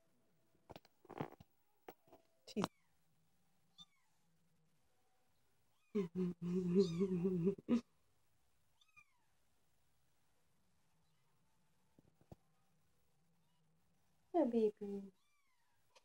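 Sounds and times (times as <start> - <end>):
kitten mewing: 6.0 - 7.8.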